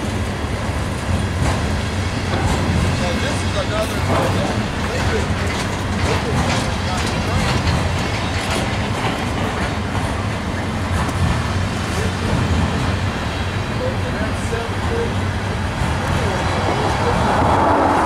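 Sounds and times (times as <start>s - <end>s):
train wheels rumbling on rails: 0.0s - 18.0s
wheels clacking over rail joints: 0.0s - 18.0s.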